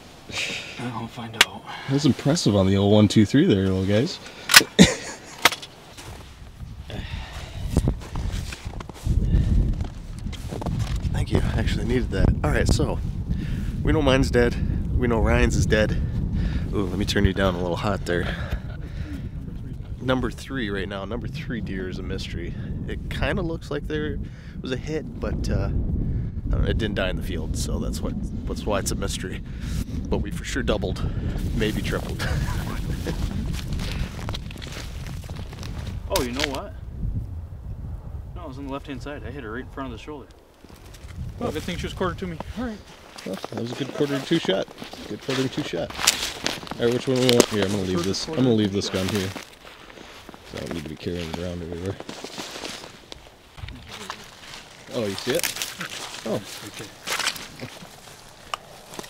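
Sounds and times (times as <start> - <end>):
footsteps crunching through snow: 5.8 - 11.1, 31.4 - 36.6, 40.5 - 59.0.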